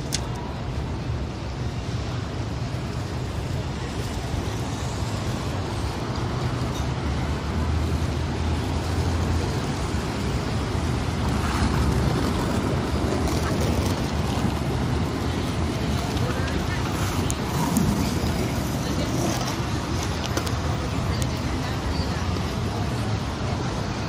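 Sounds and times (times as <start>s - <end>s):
city street traffic rumble: 0.0s - 24.0s.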